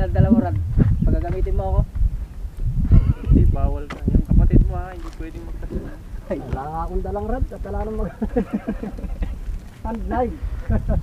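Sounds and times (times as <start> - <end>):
men talking: 0.0 - 2.0, 2.9 - 11.0.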